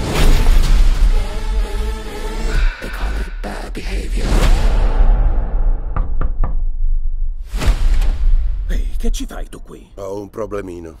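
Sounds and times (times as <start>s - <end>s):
knocks on a door: 5.9s - 6.8s.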